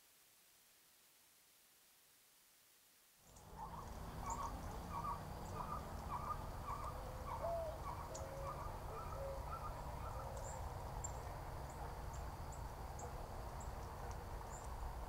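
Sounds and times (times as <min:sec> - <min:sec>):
low outdoor rumble: 0:03.3 - 0:15.0.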